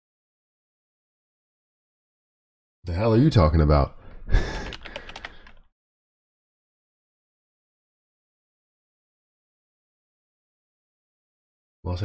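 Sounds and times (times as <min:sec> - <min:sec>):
computer keyboard key clicks: 0:04.6 - 0:05.6.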